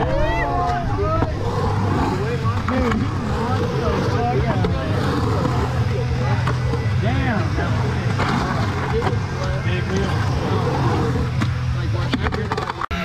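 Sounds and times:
onlookers talking and calling out: 0.0s - 13.0s
skateboard wheels rolling on concrete: 0.0s - 13.0s.

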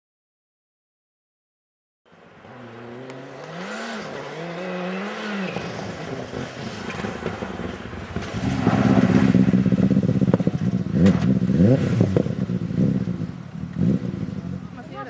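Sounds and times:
rally car engine approaching: 2.1s - 15.0s.

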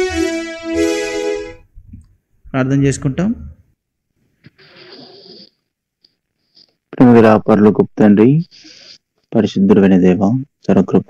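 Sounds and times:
breath into microphone: 4.2s - 5.6s, 8.5s - 9.1s.

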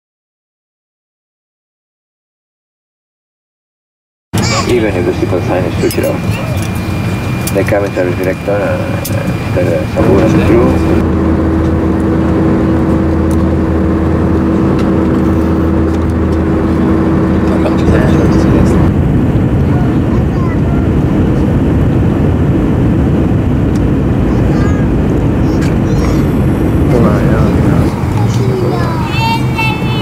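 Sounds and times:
airliner engines roaring: 4.4s - 30.0s
low steady hum: 4.4s - 30.0s.

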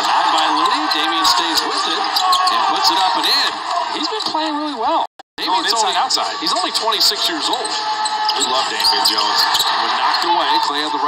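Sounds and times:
sharp court noises: 0.0s - 4.6s, 5.6s - 11.0s.

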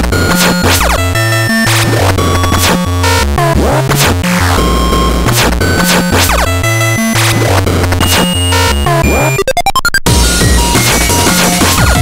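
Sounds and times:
drum and bass electronic music: 0.0s - 12.0s
glitchy stutter of rising blips: 0.0s - 12.0s.

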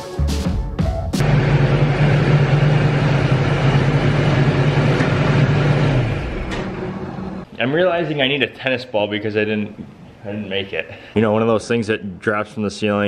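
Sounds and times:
garage door opener humming: 1.2s - 7.5s.

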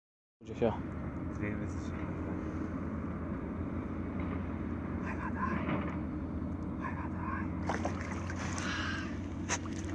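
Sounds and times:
low engine drone: 0.4s - 9.9s.

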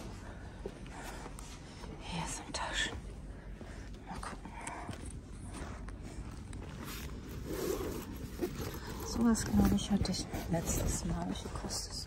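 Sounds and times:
low hum of shop: 0.0s - 12.0s
rustling and scraping handling: 5.5s - 12.0s.

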